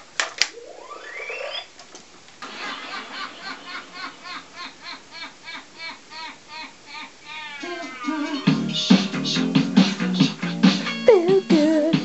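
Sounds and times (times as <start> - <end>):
toy ray gun rising whine: 0.6 - 1.7.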